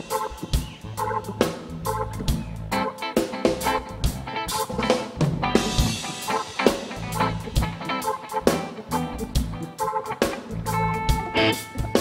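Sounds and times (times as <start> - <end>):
bass notes: 0.0 - 12.0
drum beat: 0.0 - 12.0
repeating guitar chord figure: 0.0 - 12.0.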